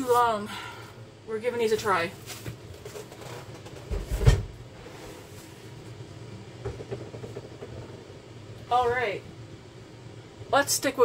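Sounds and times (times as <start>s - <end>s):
rustling and handling sounds: 1.6s - 6.0s.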